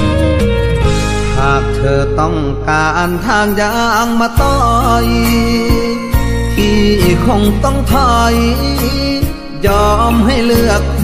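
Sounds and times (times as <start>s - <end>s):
band accompaniment: 0.0s - 2.4s
man singing ornamented line: 1.2s - 11.0s.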